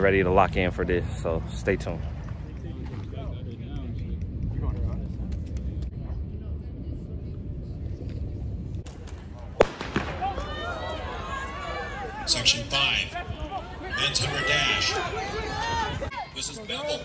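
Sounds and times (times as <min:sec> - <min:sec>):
wind rumble on microphone: 0:00.0 - 0:12.2, 0:12.9 - 0:16.2
crowd voices: 0:00.0 - 0:17.0.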